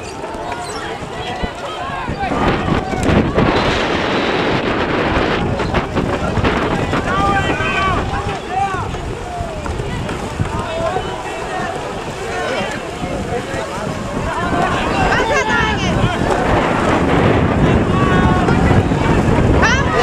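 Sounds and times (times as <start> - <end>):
voices shouting across water: 0.0 - 20.0
wind buffeting microphone: 0.0 - 20.0.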